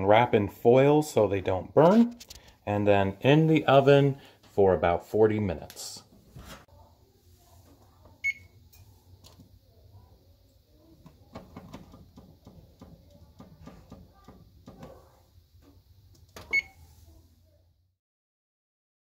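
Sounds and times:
faint low hum: 0.0 - 17.9
oven control beeping: 8.2 - 8.6, 16.4 - 16.9.

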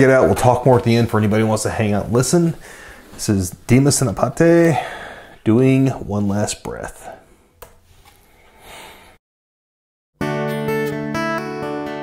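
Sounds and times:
man's voice: 0.0 - 2.6, 3.2 - 7.2.

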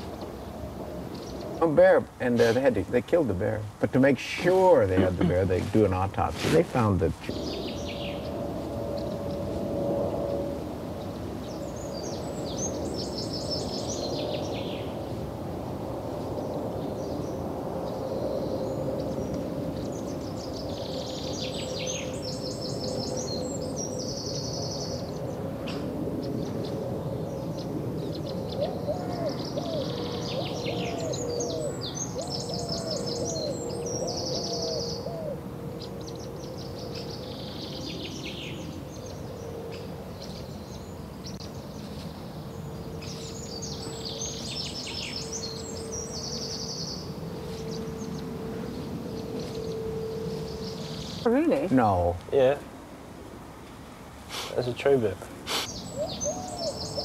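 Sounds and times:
high chirping birdsong: 0.0 - 15.2, 15.8 - 52.7, 54.4 - 57.0
faint steady hum: 0.0 - 57.0
short low bird calls: 27.5 - 41.5, 55.4 - 57.0.

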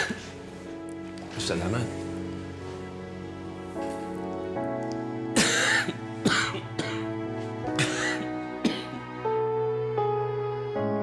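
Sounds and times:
soft background music: 0.0 - 11.0
man coughing: 5.4 - 7.0, 7.8 - 9.0.

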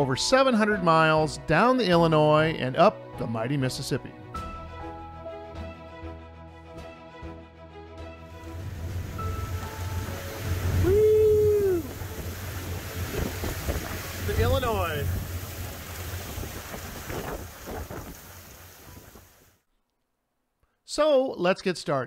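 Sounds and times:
boat engine drone: 8.3 - 19.4
wind noise on microphone: 8.6 - 19.5.

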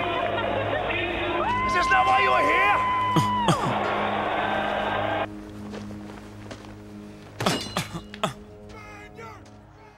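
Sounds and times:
background music low steady tone: 0.0 - 9.9.

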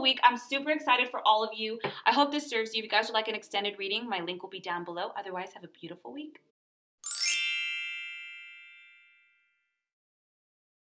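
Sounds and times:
bright chime: 7.0 - 9.6.

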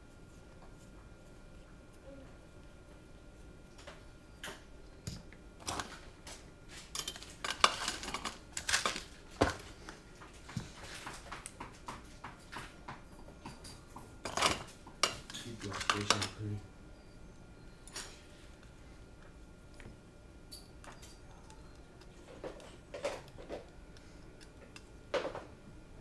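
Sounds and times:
small hard parts clattering: 6.7 - 9.7, 14.2 - 16.4.

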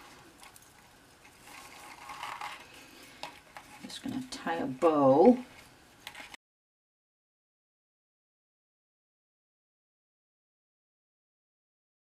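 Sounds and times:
ribbon rustling around box: 0.0 - 6.4.

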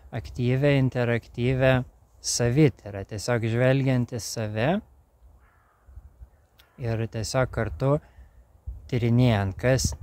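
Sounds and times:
man talking: 0.0 - 4.9, 6.8 - 8.1, 8.9 - 10.0
faint crow cawing: 5.2 - 7.1, 8.0 - 8.6.

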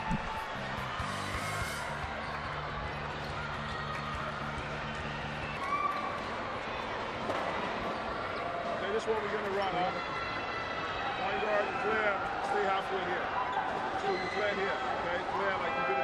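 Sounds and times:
music over sound system: 0.0 - 2.1
crowd hubbub: 0.0 - 16.0.

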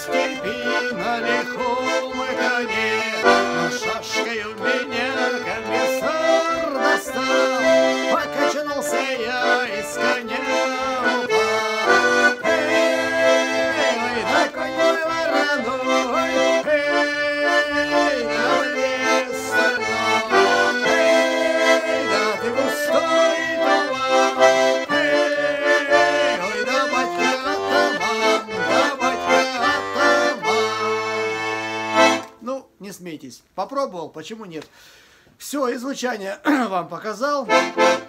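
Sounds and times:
button accordion folk tune: 0.0 - 32.4, 37.4 - 38.0.

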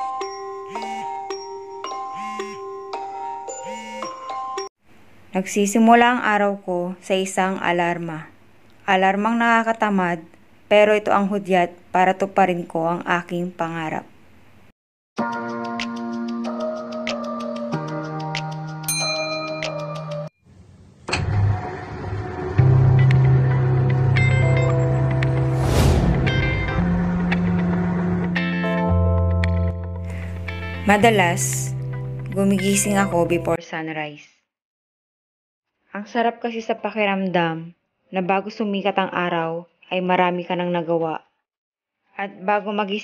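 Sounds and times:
phone alarm chiming melody: 0.0 - 4.7.

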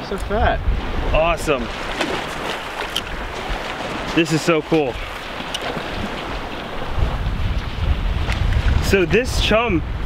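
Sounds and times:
small waves breaking on beach: 0.0 - 10.0
wind buffeting microphone: 0.0 - 10.0.

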